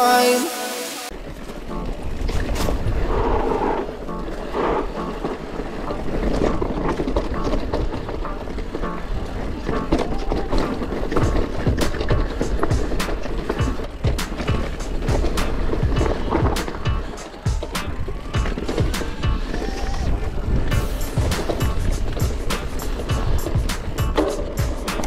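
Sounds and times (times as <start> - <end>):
music: 0.0 - 1.1, 1.7 - 2.9, 4.0 - 25.0
bike tyres rumbling on stone: 1.1 - 25.0
bike knocking and rattling: 5.2 - 25.0.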